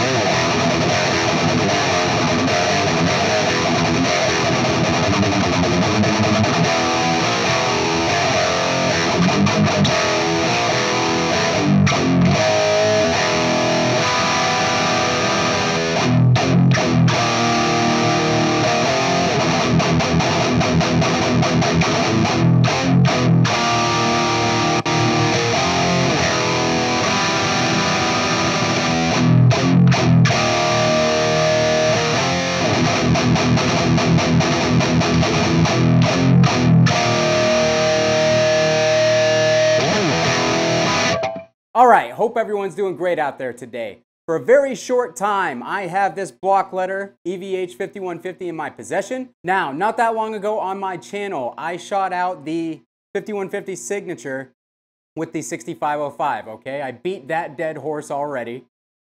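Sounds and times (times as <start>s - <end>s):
distorted electric guitar riffing: 0.0s - 42.1s.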